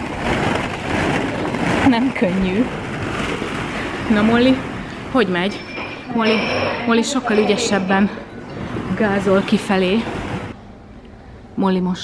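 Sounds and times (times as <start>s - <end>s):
plastic balls knocking together: 0.0s - 4.8s
person speaking: 4.1s - 10.2s.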